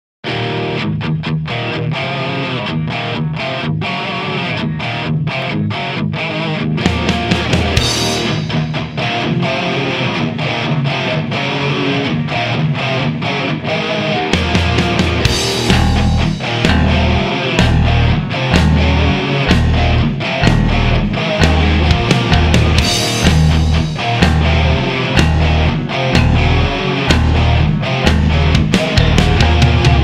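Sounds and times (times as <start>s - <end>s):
distorted electric guitar riff: 0.2s - 30.0s
bass and drums: 6.8s - 9.1s, 14.3s - 30.0s
cymbal crash: 14.4s - 29.1s.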